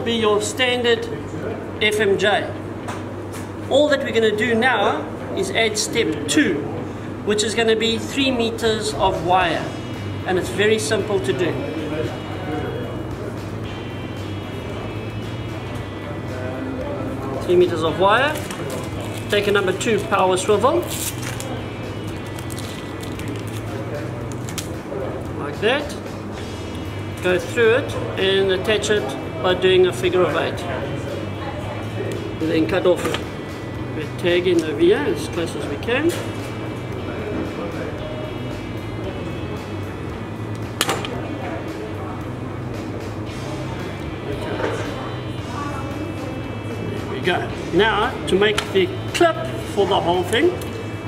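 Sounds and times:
steady low hum: 0.0s - 51.0s
background music: 3.6s - 51.0s.

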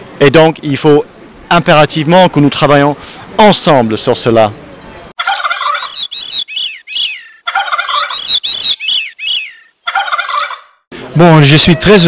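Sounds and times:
loud arching bird calls: 5.2s - 10.9s.

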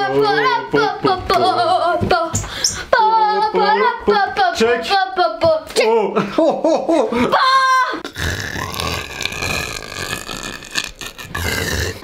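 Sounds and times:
man croaking raspily: 8.1s - 12.0s.

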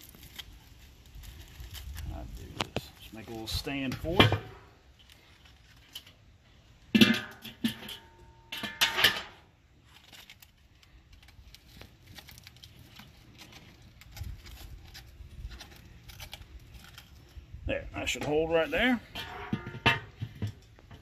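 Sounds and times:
aluminium foil crinkling: 0.0s - 4.1s, 4.8s - 6.6s, 9.7s - 17.6s
metal clinks on grill grate: 6.9s - 9.4s, 19.0s - 20.6s.

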